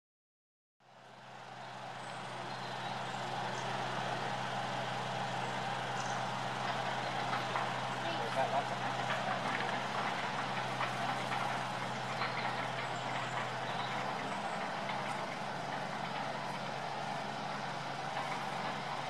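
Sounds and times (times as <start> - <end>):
faint voices: 2.3 - 17.5.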